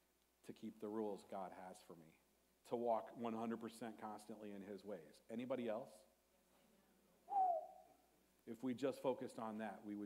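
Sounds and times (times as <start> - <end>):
person hooting: 7.3 - 7.9.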